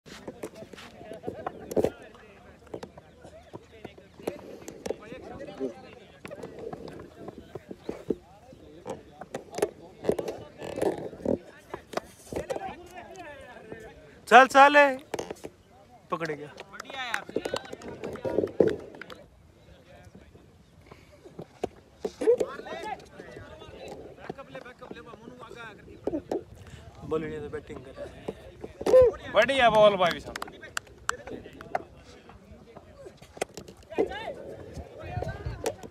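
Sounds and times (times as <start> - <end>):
men calling and shouting: 0.1 - 35.9.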